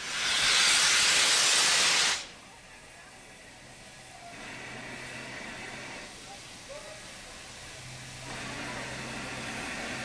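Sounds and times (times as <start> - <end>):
steam locomotive hissing steam: 0.0 - 10.0.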